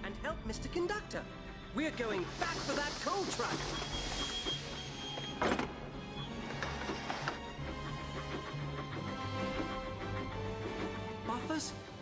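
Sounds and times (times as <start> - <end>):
film-score music: 0.0 - 12.0.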